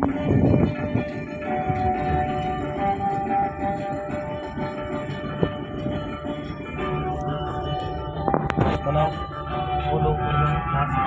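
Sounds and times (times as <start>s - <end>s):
music in sustained tones: 0.0s - 11.0s.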